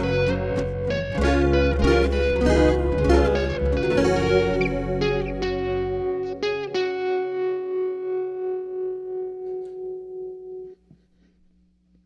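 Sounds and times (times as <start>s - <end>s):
guitar chord ringing: 0.0s - 10.9s.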